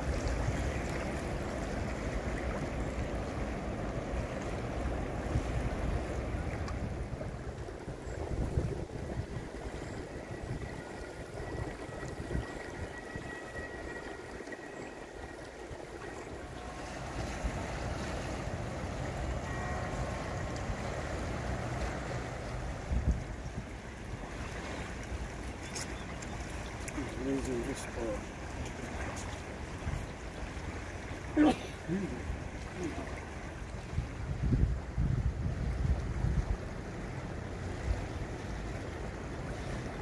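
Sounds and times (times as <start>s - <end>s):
wind rumbling on microphone: 0.0s - 27.4s, 32.2s - 40.0s
river rushing: 0.0s - 40.0s.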